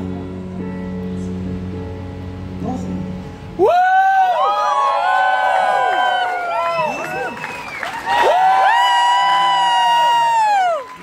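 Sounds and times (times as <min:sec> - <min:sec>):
concert crowd screaming and cheering: 0:03.6 - 0:11.0.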